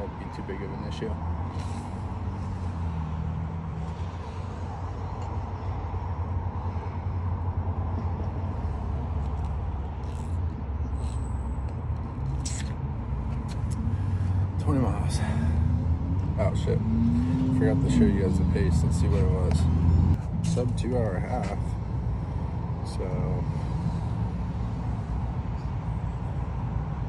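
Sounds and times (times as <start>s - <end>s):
road traffic rumble: 0.0s - 27.0s.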